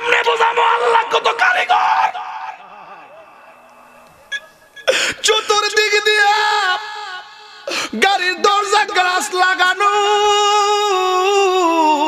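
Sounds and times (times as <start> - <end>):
man sobbing: 4.3 - 9.0.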